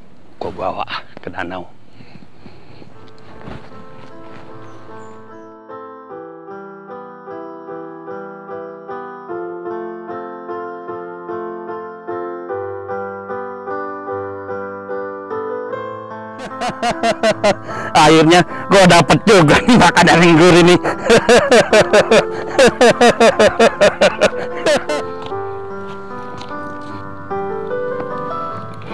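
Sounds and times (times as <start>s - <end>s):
outdoor background hiss: 0.0s - 5.5s, 16.4s - 28.9s
keyboard playing repeated chords: 3.9s - 28.9s.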